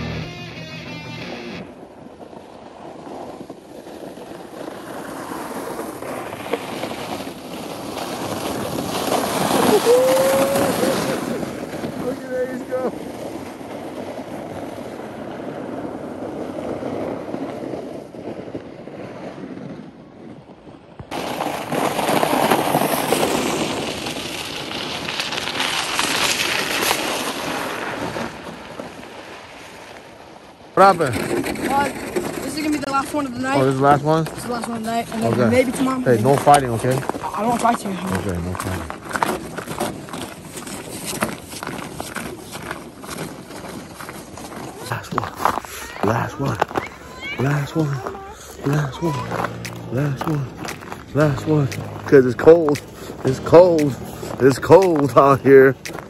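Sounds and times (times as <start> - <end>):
sleds scraping down icy snow: 0.8 - 56.0
short shout: 9.7 - 11.0, 45.8 - 49.5
children's voices: 45.6 - 50.5.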